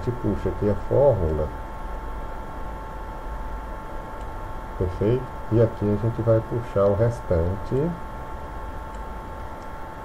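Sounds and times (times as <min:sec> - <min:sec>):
electrical hum and hiss: 0:00.0 - 0:10.0
faint constant tone: 0:00.0 - 0:10.0.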